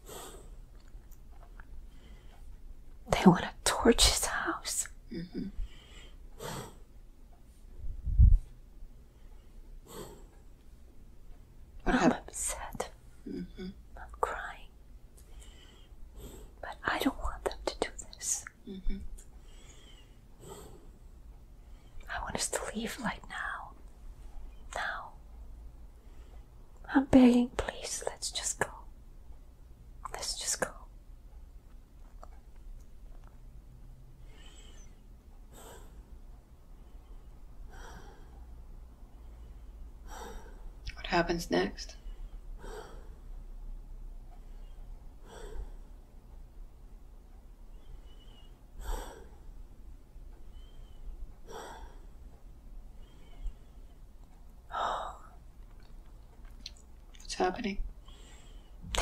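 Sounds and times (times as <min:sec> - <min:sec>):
woman whispering: 0:03.1 - 0:05.6, 0:11.8 - 0:14.8, 0:16.5 - 0:19.2, 0:22.0 - 0:23.9, 0:24.6 - 0:25.3, 0:26.8 - 0:29.0, 0:30.0 - 0:31.0, 0:40.9 - 0:42.0, 0:54.7 - 0:55.4, 0:57.2 - 0:57.9.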